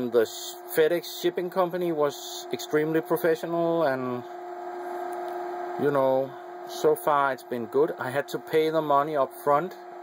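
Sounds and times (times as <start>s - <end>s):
printer fan humming: 0.0s - 10.0s.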